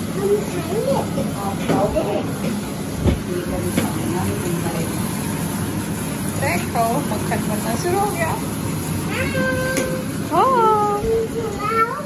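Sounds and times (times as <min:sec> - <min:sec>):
young boy wailing: 0:09.1 - 0:10.0.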